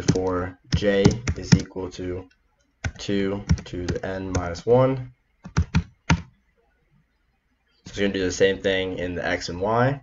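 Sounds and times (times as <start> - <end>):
computer keyboard typing: 0.0 - 1.8, 2.8 - 4.6, 5.4 - 6.3.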